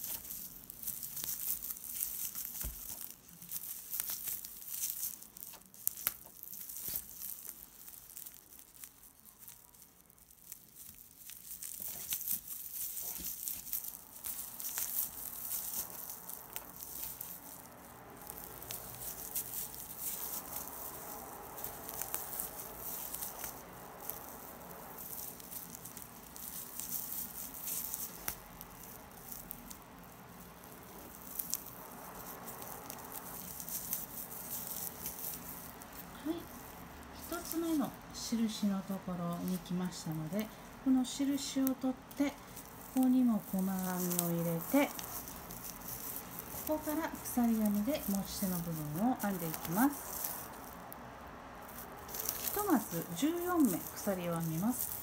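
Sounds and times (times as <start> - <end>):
yarn crinkling and rustling: 0.0 - 55.0.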